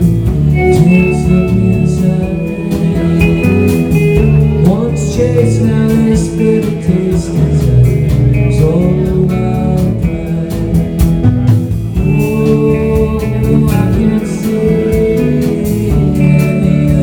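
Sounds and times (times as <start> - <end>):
live rock band playing: 0.0 - 17.0.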